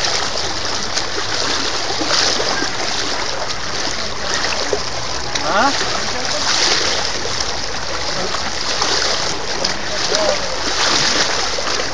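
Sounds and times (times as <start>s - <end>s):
water splashing in a current: 0.0s - 11.9s.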